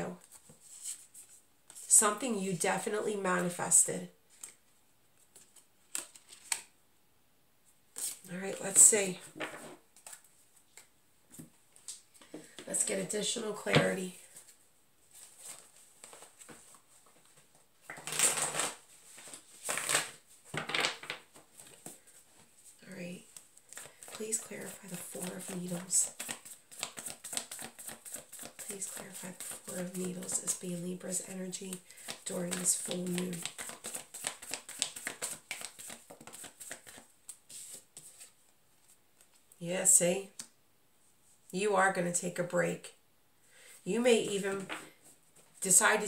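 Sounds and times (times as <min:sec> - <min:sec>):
cards being shuffled: 0:05.3 - 0:06.7, 0:07.9 - 0:12.6, 0:15.1 - 0:22.2, 0:23.3 - 0:39.4.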